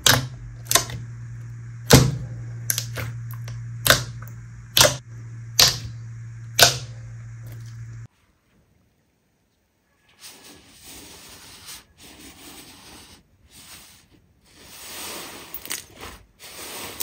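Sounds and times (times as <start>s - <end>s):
steady low hum: 0.0s - 8.1s
slime popping and clicking: 5.6s - 5.9s.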